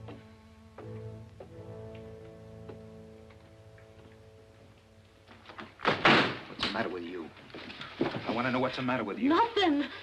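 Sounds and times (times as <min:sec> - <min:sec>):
wooden door banging: 0:05.4 - 0:06.9.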